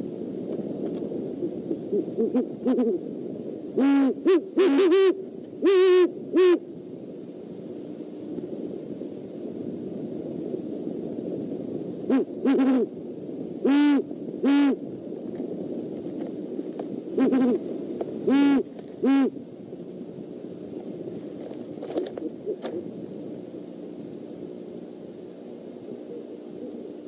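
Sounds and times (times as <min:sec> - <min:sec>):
owl hooting: 0:01.4 - 0:06.7, 0:12.0 - 0:13.0, 0:13.6 - 0:14.9, 0:16.8 - 0:19.4, 0:22.0 - 0:22.8, 0:25.6 - 0:27.0.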